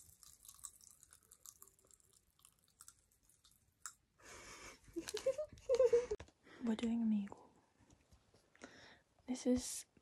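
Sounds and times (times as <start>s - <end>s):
candy crackling: 0.0s - 4.0s.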